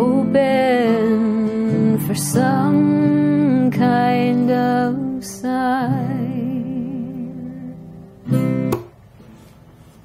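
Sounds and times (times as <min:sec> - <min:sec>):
acoustic guitar strummed chord: 0:07.4 - 0:09.4.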